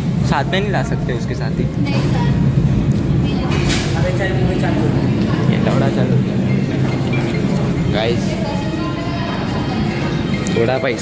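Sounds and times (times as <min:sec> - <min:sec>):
steady low rumble: 0:00.0 - 0:10.5
chatter of voices: 0:00.0 - 0:11.0.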